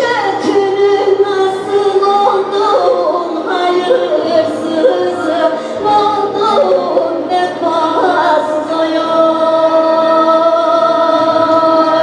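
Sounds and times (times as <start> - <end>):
live band with electronic keyboard: 0.0 - 11.8.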